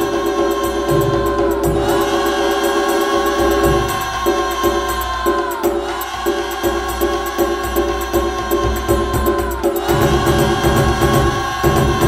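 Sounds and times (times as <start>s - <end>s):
light percussion: 0.0s - 12.0s.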